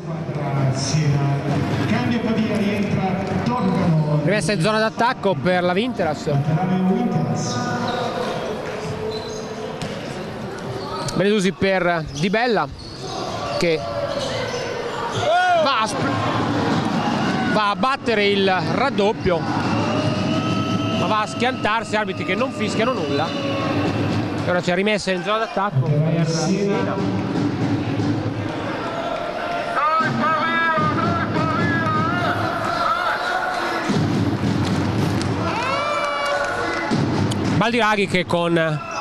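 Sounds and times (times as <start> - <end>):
crowd noise: 0.0 - 39.0.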